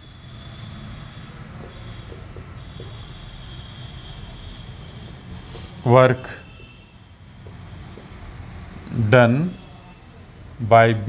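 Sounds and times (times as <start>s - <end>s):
faint high whine: 0.0s - 11.0s
marker writing on whiteboard: 1.1s - 11.0s.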